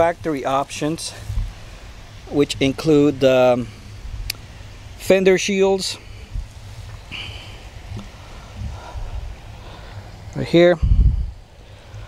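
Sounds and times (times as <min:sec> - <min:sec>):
uneven low rumble: 0:00.0 - 0:05.1, 0:06.0 - 0:12.0.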